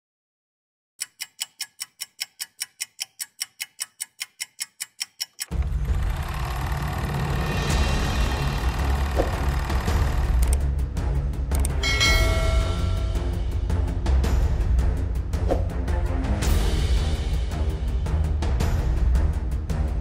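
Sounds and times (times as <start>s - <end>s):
even ticking: 1.0s - 7.9s
intro music with strong bass: 5.5s - 20.0s.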